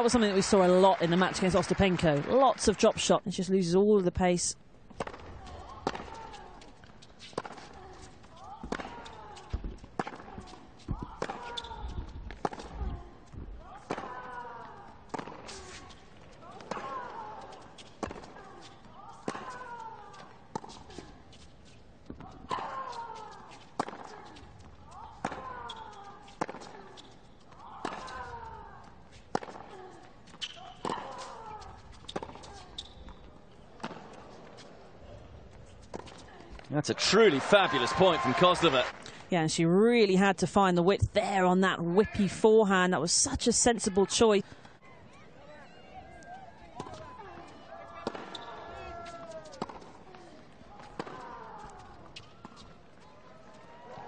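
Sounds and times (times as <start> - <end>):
tennis ball hit by racquets: 4.9 - 12.8, 13.7 - 14.4, 15.0 - 15.9, 16.5 - 18.5, 19.1 - 20.9, 22.1 - 24.4, 25.0 - 28.4, 29.3 - 34.8, 46.8 - 52.7.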